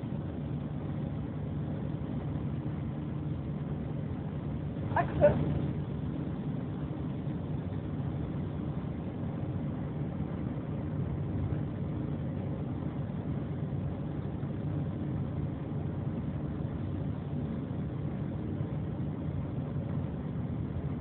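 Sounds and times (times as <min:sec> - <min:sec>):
car engine and road noise: 0:00.0 - 0:21.0.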